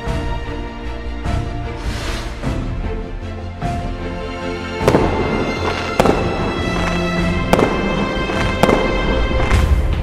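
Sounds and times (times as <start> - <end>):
music: 0.0 - 10.0
fireworks bangs: 4.8 - 10.0.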